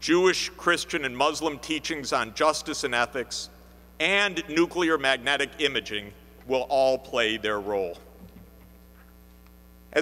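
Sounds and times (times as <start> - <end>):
man's voice: 0.0 - 8.0
faint electrical mains hum: 0.0 - 10.0.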